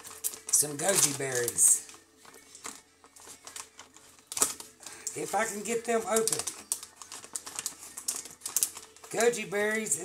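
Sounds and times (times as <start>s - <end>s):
plastic pouch crinkling: 0.0s - 10.0s.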